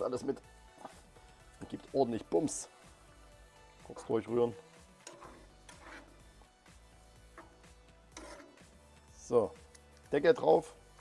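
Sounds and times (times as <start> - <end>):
faint background music: 0.0 - 11.0
ladle stirring in a pot: 4.5 - 6.4, 7.2 - 8.9.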